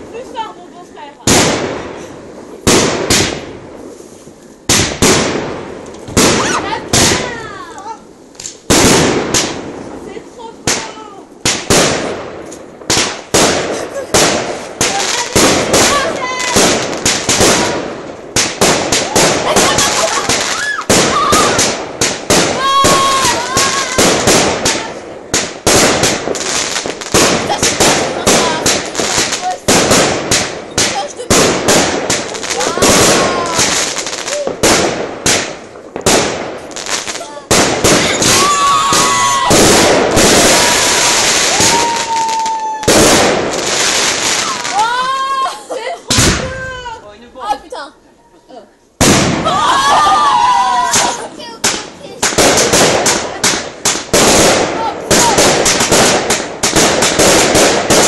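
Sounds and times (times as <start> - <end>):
fireworks bangs and crackles: 0.0 - 48.1, 49.0 - 58.0
firework whistles: 19.0 - 21.8, 37.8 - 44.8.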